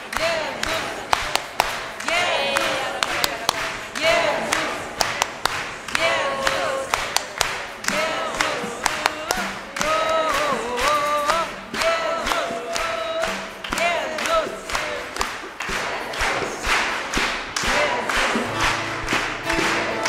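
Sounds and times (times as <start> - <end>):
group singing worship song: 0.0 - 20.0
hands clapping: 0.0 - 20.0
bongos played by hand: 17.6 - 20.0.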